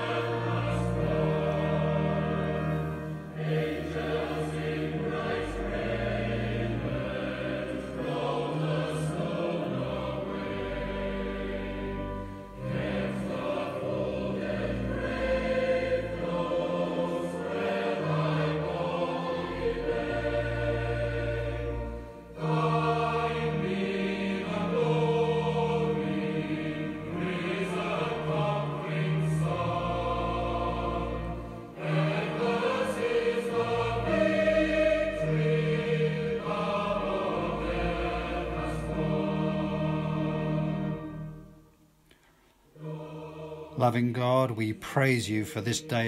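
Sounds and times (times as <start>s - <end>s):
choir singing a hymn: 0.0s - 41.7s, 42.6s - 46.0s.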